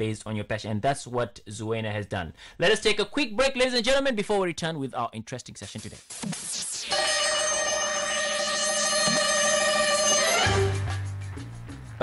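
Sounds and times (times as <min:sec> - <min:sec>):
high electronic sweep: 0:05.9 - 0:10.9
bell-like electronic chord: 0:06.9 - 0:11.0.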